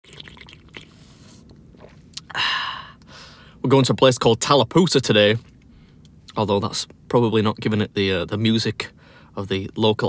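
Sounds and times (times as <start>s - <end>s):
person sipping and slurping coffee: 0.1s - 2.3s.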